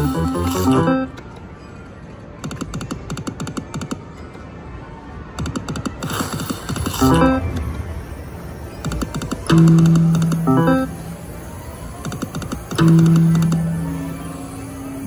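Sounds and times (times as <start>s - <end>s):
stepped electronic notes: 0.0s - 1.1s, 7.0s - 8.2s, 8.8s - 11.3s, 12.4s - 15.0s
rapid electronic ticking: 8.8s - 11.3s, 12.0s - 15.0s.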